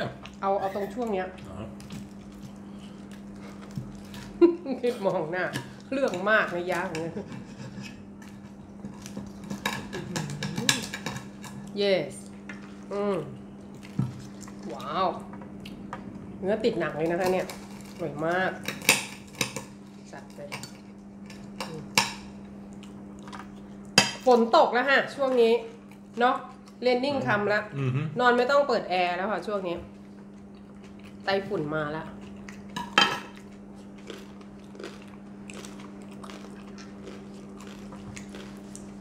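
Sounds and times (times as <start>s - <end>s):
steady low hum: 0.0s - 39.0s
cutlery scraping ceramic plate: 7.0s - 8.0s
crunchy chewing: 30.0s - 31.3s, 32.1s - 39.0s.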